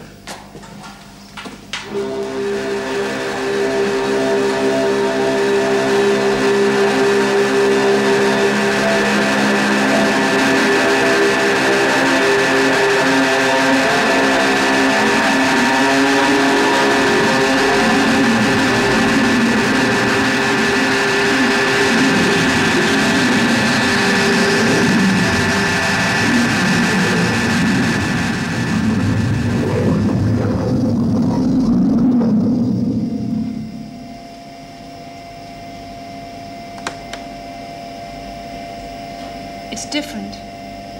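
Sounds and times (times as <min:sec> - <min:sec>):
electronic held tones rumbling: 0:01.9 - 0:40.9.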